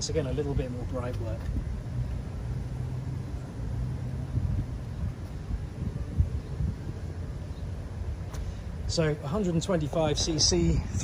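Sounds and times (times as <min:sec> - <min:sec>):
vehicle engine rumble: 0:00.0 - 0:11.0.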